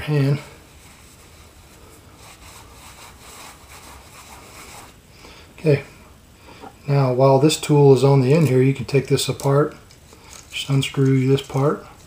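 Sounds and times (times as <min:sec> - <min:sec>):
hands rubbing on cloth rag: 0:00.7 - 0:05.0.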